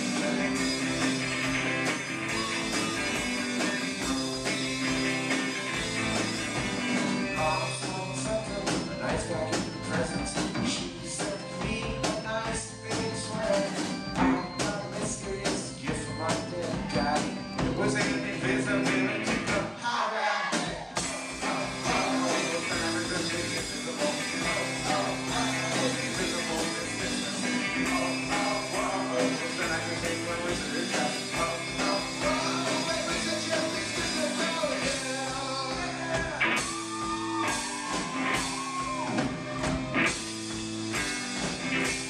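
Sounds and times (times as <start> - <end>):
live rock band playing: 0.0 - 19.8, 20.6 - 42.0.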